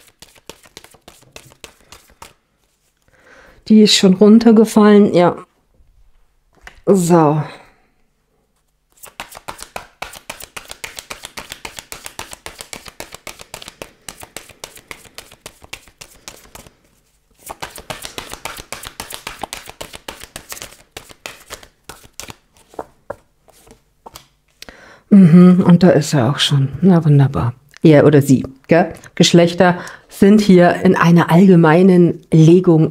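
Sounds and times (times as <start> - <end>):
cards shuffled by hand: 0.0 - 3.0, 8.6 - 24.6.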